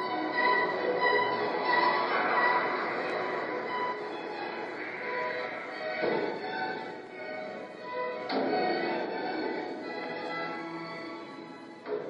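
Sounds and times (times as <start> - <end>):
steady noisy wash: 0.0 - 11.6
music over loudspeakers: 0.0 - 12.0.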